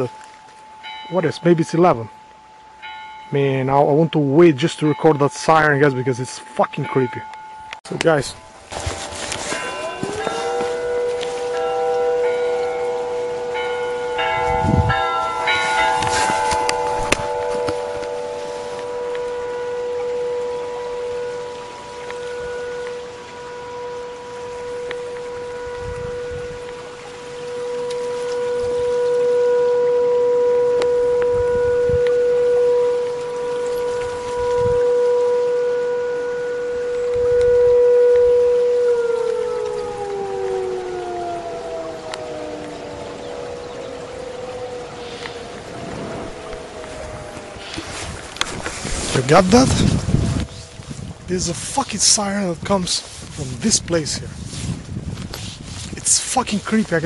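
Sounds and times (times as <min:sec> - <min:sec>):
siren steady tone: 0:08.4 - 0:52.2.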